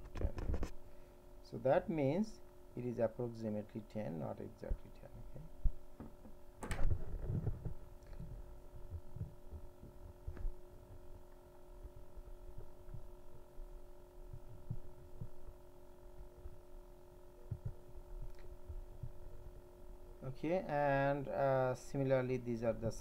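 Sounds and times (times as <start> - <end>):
low electrical hum: 0.0 - 23.0
soft low thumps: 5.6 - 20.0.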